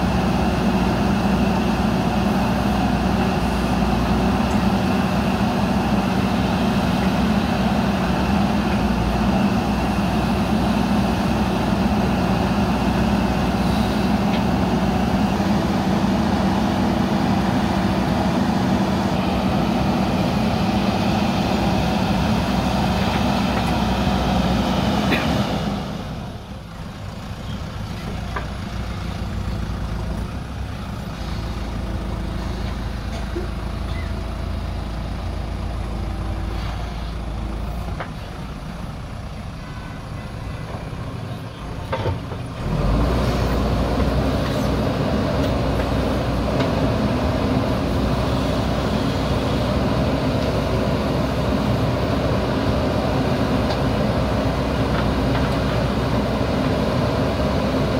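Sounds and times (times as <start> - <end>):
backhoe diesel engine running: 0.0 - 57.9.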